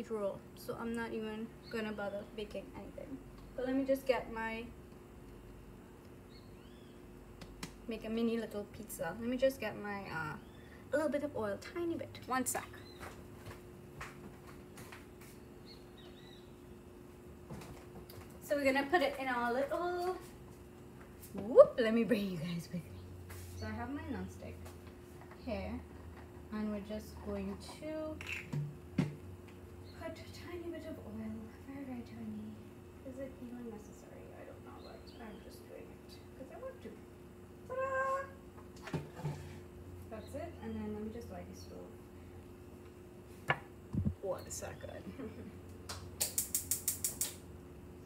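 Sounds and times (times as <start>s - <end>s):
steady low hum: 0.0s - 48.0s
sharp click: 46.2s - 47.4s.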